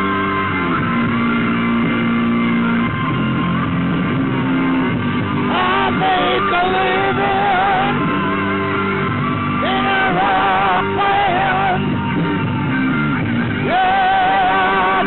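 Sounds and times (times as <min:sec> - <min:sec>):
electric guitar: 0:00.0 - 0:15.0
rock band playing live: 0:00.0 - 0:15.0.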